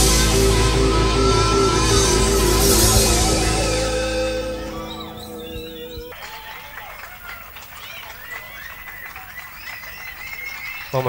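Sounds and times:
rock band chord ringing: 0:00.0 - 0:06.4
crowd noise: 0:00.0 - 0:11.0
audience whistles: 0:00.8 - 0:11.0.

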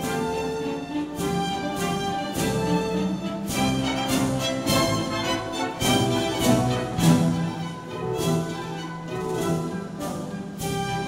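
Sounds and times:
orchestra playing with strings: 0:00.0 - 0:11.0.

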